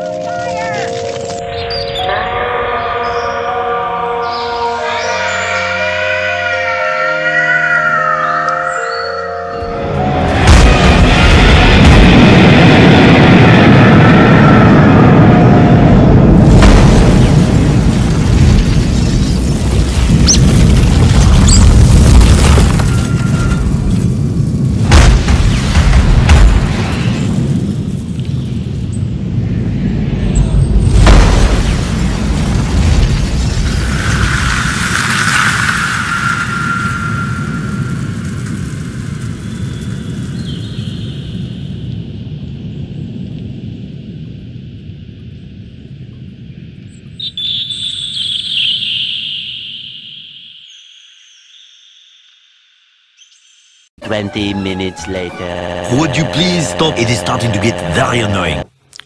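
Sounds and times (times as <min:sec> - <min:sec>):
music: 0:00.0 - 0:11.8
loud crash-like hits: 0:10.3 - 0:14.0
heavy booming rumble: 0:10.3 - 0:35.2.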